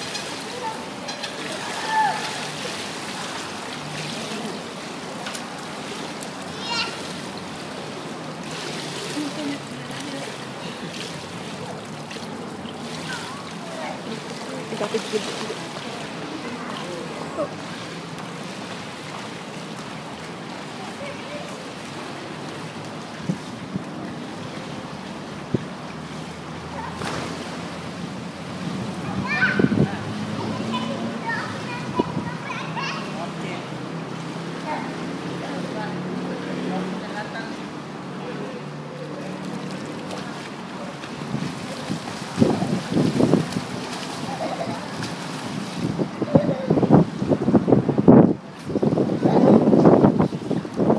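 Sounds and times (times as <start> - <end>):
swimmers splashing: 0.0 - 47.7
pool water noise: 0.0 - 50.9
water lapping: 0.0 - 50.9
wind on microphone: 23.1 - 24.6, 28.5 - 30.2, 41.2 - 50.9.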